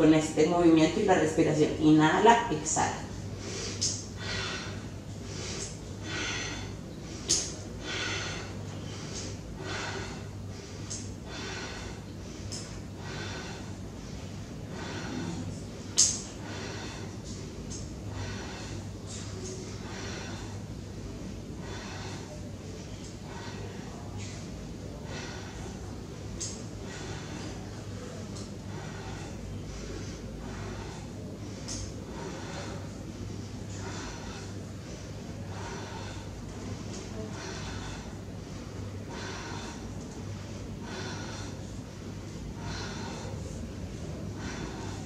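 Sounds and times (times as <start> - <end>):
steady low hum: 0.0 - 45.0
woman breathing through nose: 3.3 - 45.0.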